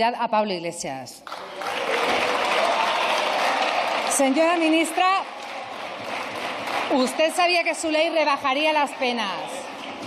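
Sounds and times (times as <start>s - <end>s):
crowd applauding: 1.2s - 10.0s.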